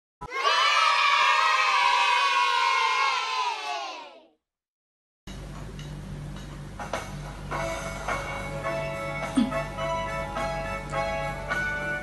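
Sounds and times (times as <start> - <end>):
children cheering: 0.2 - 4.3.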